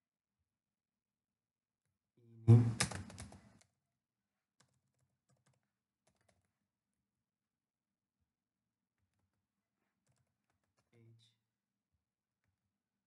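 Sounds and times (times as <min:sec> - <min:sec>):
computer keyboard typing: 0:02.6 - 0:03.6, 0:04.6 - 0:06.6, 0:10.0 - 0:10.9.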